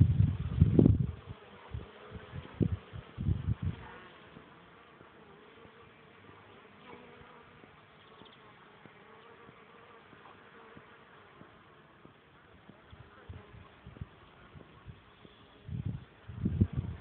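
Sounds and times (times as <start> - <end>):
insects buzzing: 0.0 - 17.0.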